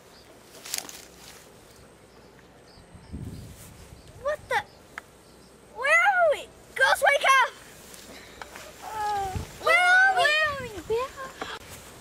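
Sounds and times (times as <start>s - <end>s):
girl's wordless rising calls: 8.7s - 11.4s.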